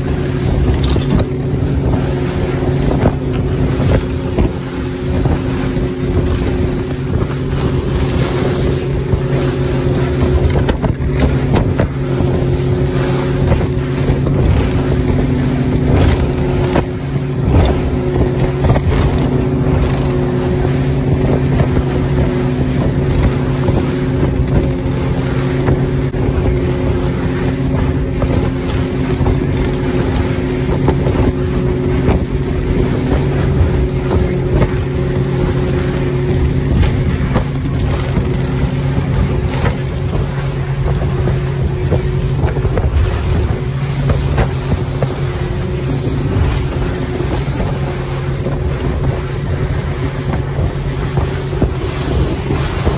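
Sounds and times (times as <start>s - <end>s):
motorboat engine humming: 0.0s - 52.9s
water rushing off hull: 0.0s - 52.9s
wind on microphone: 0.0s - 52.9s.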